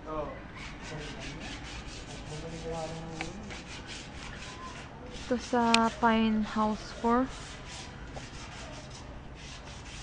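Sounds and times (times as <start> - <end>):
sandpaper rubbing on metal: 0.6 - 6.1, 7.2 - 10.0.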